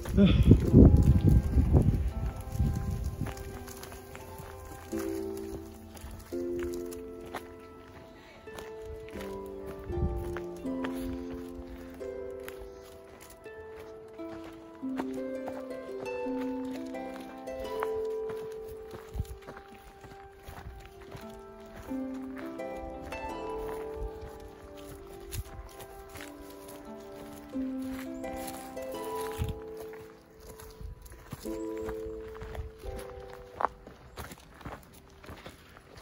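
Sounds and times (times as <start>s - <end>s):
footsteps on dirt path: 0.0s - 36.0s
soft music of held notes: 0.0s - 36.0s.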